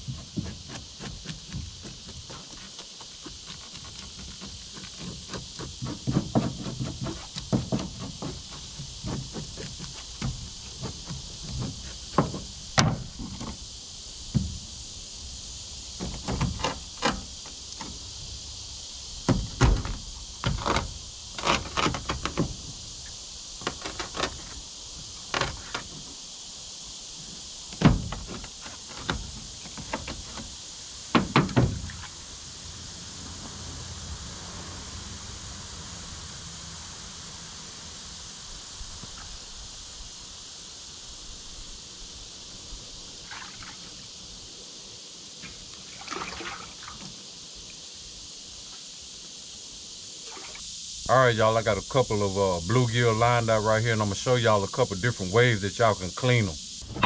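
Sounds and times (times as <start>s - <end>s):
high-pitched hiss: 0.0s - 57.0s.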